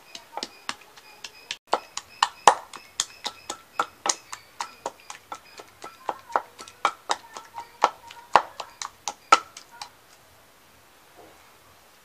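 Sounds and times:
wooden pestle pounding in mortar: 0:00.0 - 0:09.9.

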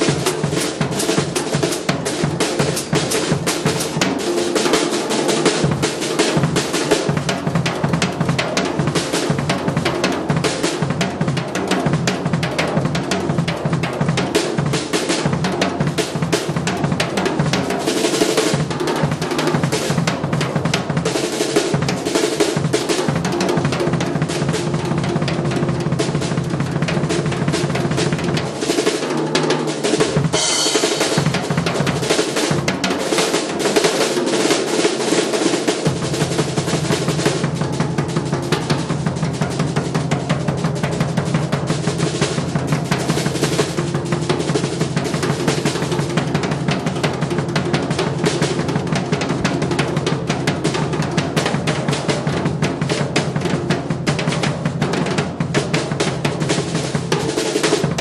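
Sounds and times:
jazz drum solo: 0:00.0 - 0:58.0
bright cymbal wash: 0:30.4 - 0:31.2.

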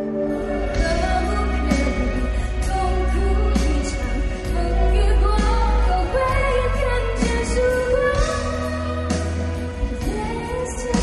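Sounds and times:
band backing music: 0:00.0 - 0:11.0
woman singing into microphone: 0:00.0 - 0:11.0.

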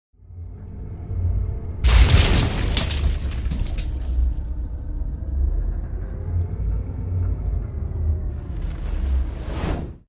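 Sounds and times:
deep rumble sound effect: 0:00.2 - 0:10.0.

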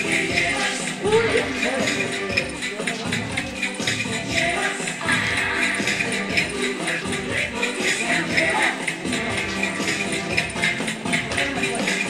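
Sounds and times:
cha-cha-cha dance music: 0:00.0 - 0:12.0.

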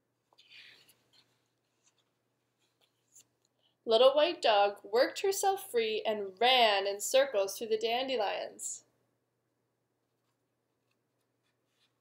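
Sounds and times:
book page turning: 0:00.3 - 0:03.4, 0:10.2 - 0:12.0.

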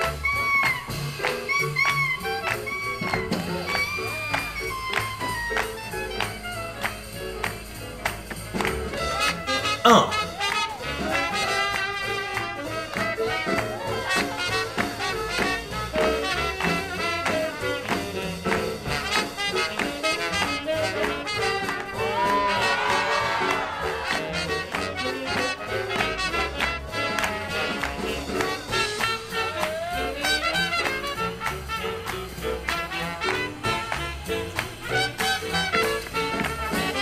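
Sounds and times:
swing big band playing: 0:00.0 - 0:37.0.

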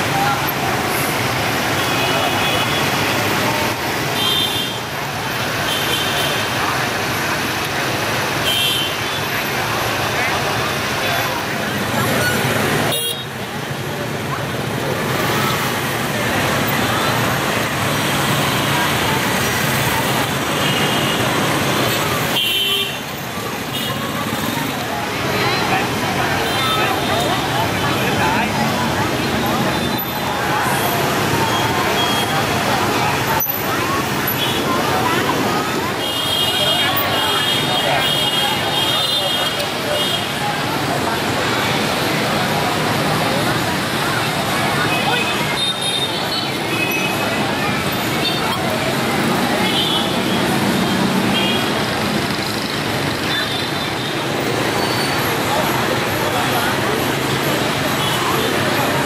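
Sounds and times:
crowd voices: 0:00.0 - 0:59.0
motorbike engines running: 0:00.0 - 0:59.0.

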